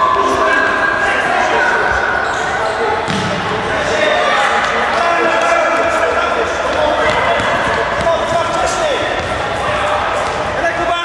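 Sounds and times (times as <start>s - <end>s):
ball thudding on court floor: 3.1s - 3.4s.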